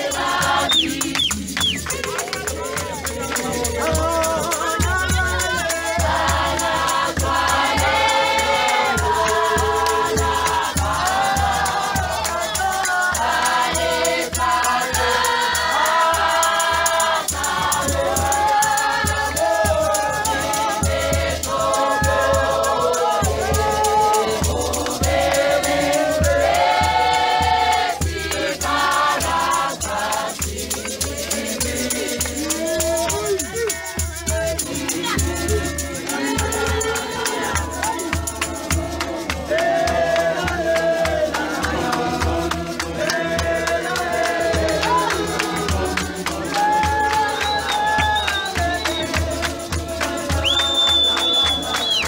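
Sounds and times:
congregation singing a hymn: 0.0 - 52.0.

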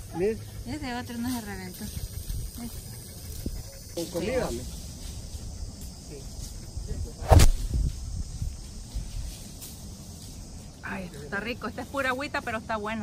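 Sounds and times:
wind rumble on microphone: 1.9 - 3.8, 6.7 - 9.4
sharp knock: 7.3 - 7.6.

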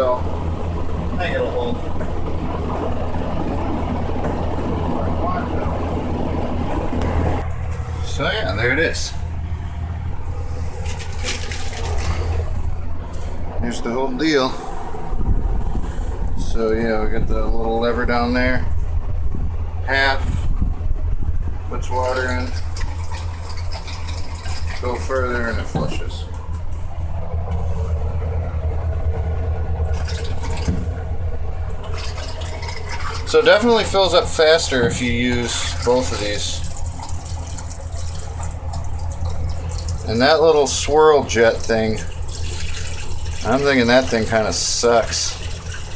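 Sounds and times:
low machine hum: 0.0 - 45.9
toilet flushing: 10.2 - 14.6, 21.8 - 26.4, 27.6 - 45.9.

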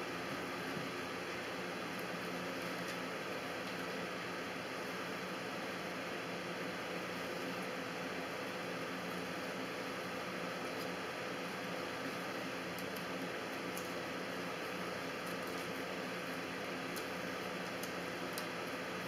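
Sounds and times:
faint electrical hum: 0.0 - 19.0.

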